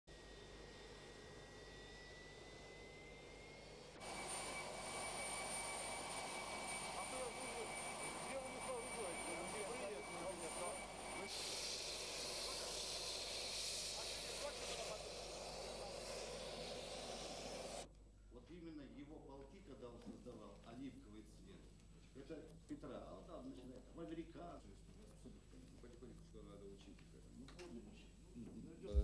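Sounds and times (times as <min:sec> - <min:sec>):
jet engines whining: 0:00.1 - 0:17.9.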